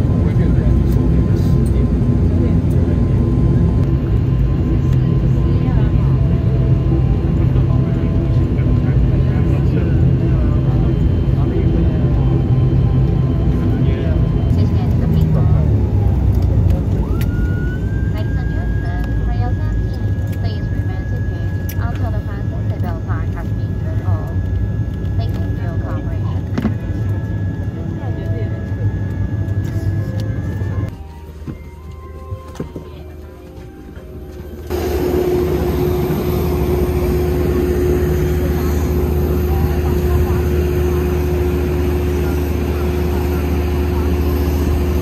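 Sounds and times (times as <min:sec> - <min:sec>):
low aircraft cabin drone: 0:00.0 - 0:45.0
passengers talking: 0:00.0 - 0:45.0.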